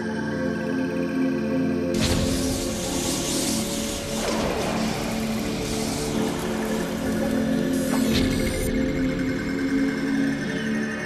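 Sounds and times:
psytrance music: 0:01.7 - 0:11.0.

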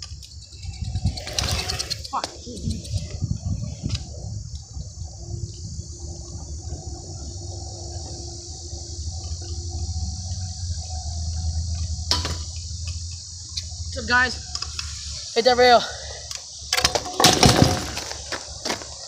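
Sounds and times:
scooter wheels rolling on asphalt: 0:00.0 - 0:19.0.

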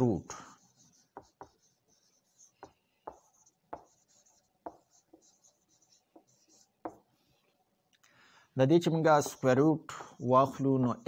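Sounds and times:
marker squeaking on whiteboard: 0:00.5 - 0:07.6, 0:09.1 - 0:11.0
marker tip tapping board: 0:02.6 - 0:05.4, 0:06.1 - 0:07.0.

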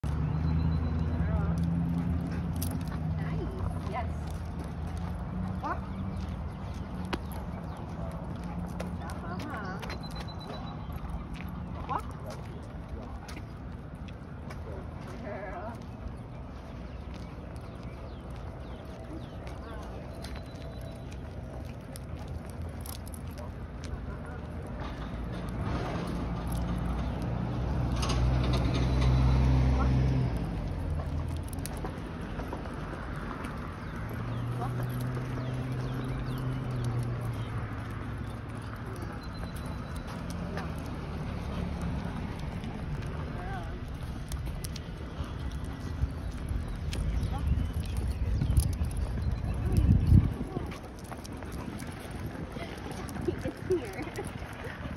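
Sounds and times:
light footsteps on pavement: 0:00.0 - 0:54.9
passing traffic: 0:00.0 - 0:54.9
vehicle engine humming: 0:00.0 - 0:54.9
wind: 0:00.0 - 0:54.9.

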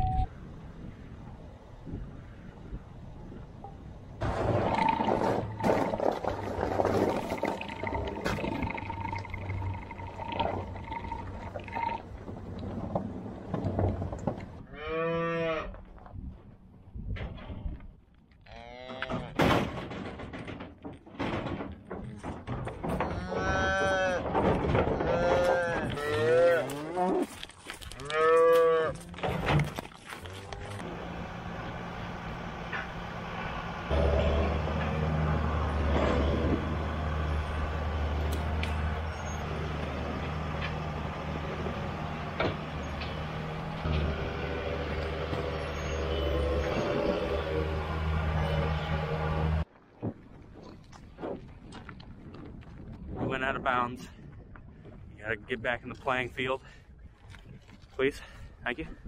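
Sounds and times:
deeper engine hum: 0:02.7 - 0:14.7, 0:28.8 - 0:49.7
engine humming with rattling: 0:04.2 - 0:14.6, 0:29.1 - 0:49.7
cows mooing: 0:14.7 - 0:15.8, 0:23.0 - 0:27.4, 0:28.0 - 0:29.3.

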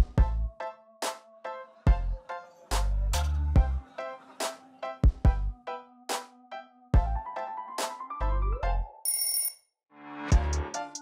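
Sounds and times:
high bell-like tone: 0:09.1 - 0:09.6
electronic music with drum beats: 0:10.3 - 0:11.0.

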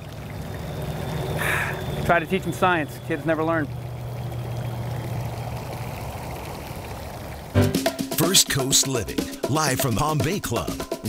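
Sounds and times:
low hum: 0:00.0 - 0:07.7
water spraying from fountain: 0:00.0 - 0:10.6.

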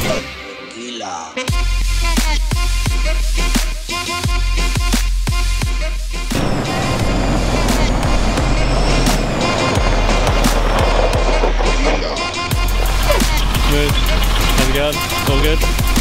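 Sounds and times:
music with deep bass: 0:01.5 - 0:16.0
tyres rumbling on gravel: 0:06.4 - 0:16.0.

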